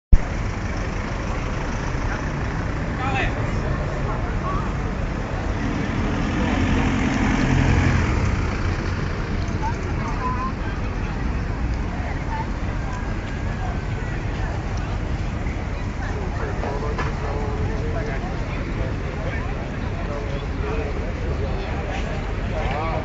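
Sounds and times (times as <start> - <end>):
street traffic noise: 0.1 - 23.0
crowd chatter: 0.2 - 23.0
vehicle driving past: 0.6 - 10.6.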